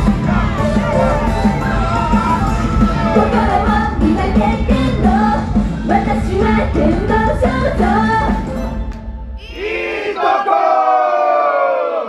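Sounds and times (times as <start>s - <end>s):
group of voices shouting together: 9.5s - 12.0s.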